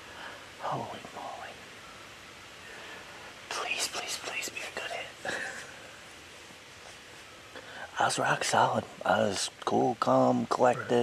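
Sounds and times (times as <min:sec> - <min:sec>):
man whispering: 0:00.1 - 0:01.7, 0:02.6 - 0:05.3, 0:07.6 - 0:11.0.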